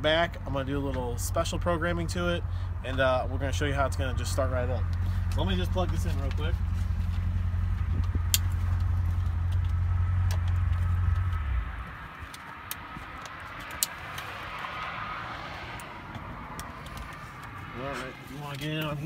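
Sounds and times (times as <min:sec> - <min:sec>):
low steady rumble: 0:00.0 - 0:14.2.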